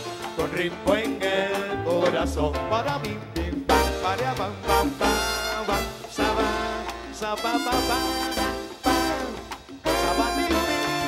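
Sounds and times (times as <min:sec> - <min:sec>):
salsa band playing: 0:00.0 - 0:11.0
horn section phrases: 0:03.7 - 0:11.0.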